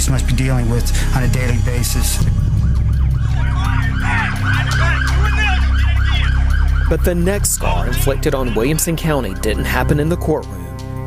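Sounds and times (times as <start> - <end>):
low steady drone: 0.0 - 9.9
police sirens yelping: 2.5 - 10.0.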